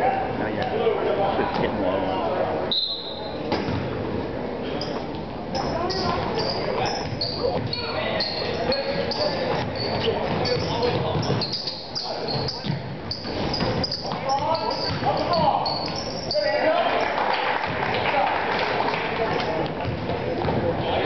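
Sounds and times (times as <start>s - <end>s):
sneakers squeaking on hardwood: 4.8s - 17.1s
voices shouting in a gym: 4.8s - 19.6s
basketball bouncing: 7.0s - 7.8s, 9.2s - 11.6s, 19.2s - 20.7s.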